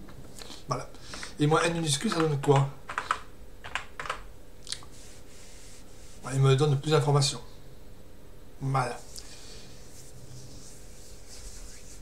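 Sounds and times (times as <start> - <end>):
computer keyboard clicks: 2.1 - 4.2.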